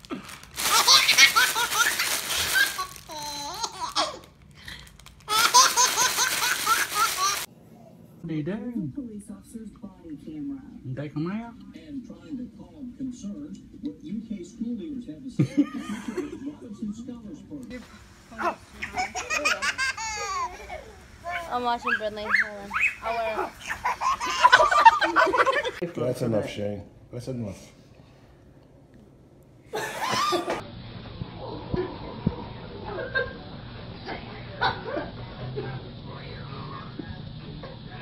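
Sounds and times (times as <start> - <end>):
plastic wrapper crinkling: 0.0 - 7.5
baby laughing: 0.6 - 4.3, 5.3 - 7.5, 18.4 - 25.8
child squealing: 21.3 - 23.9.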